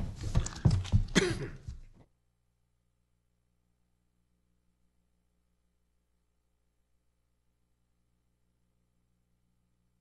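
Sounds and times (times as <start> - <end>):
knocks of people moving about: 0.0 - 2.1
person clearing throat: 0.4 - 2.0.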